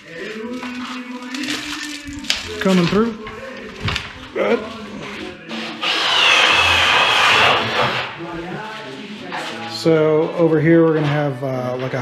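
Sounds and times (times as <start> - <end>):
power tool motor whining: 5.8 - 8.0.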